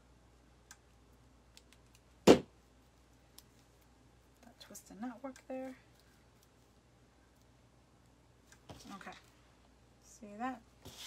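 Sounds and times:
sharp knock: 2.3s - 2.5s.

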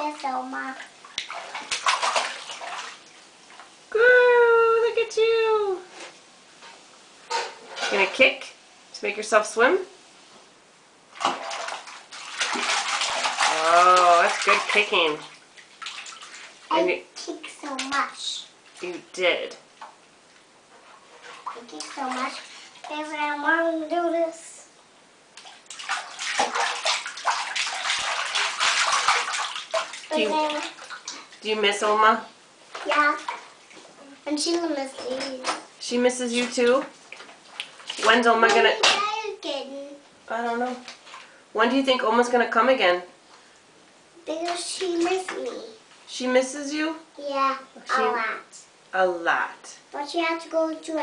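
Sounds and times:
bathwater splashing and sloshing: 0.0s - 3.9s, 7.3s - 8.4s, 11.0s - 24.4s, 25.3s - 42.4s, 44.3s - 46.6s.

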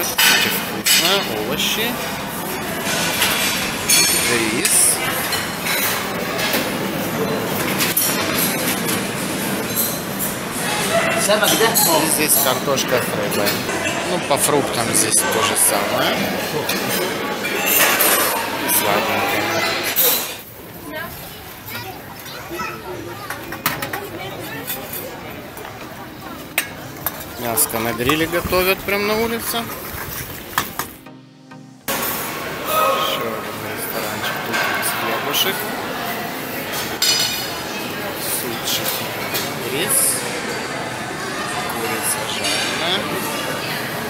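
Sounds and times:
plates and utensils clinking: 0.0s - 20.5s, 23.2s - 31.1s, 33.7s - 40.8s
chatter of many voices: 0.0s - 44.0s.

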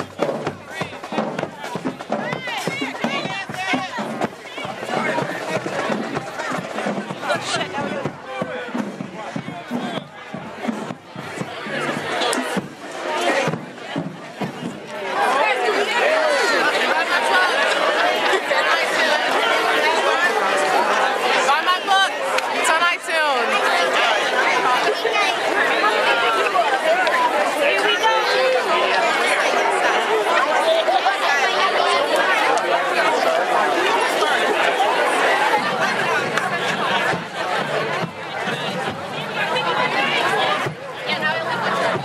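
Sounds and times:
crowd chattering: 0.0s - 42.0s.

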